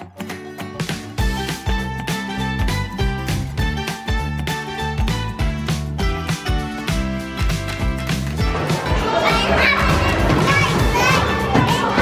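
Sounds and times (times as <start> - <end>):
background music with steady beat: 0.0 - 12.0
children's voices at play: 8.6 - 12.0.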